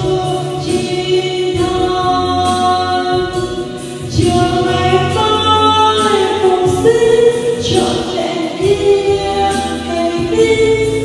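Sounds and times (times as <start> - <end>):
musical accompaniment: 0.0 - 11.0
woman singing into a microphone: 0.0 - 11.0.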